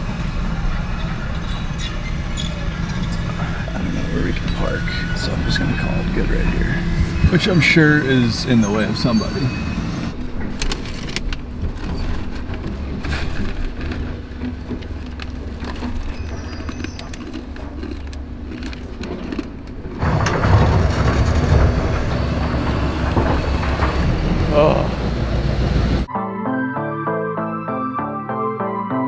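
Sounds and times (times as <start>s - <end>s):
clicks and handling noises: 10.4s - 20.0s
background music: 26.1s - 29.0s.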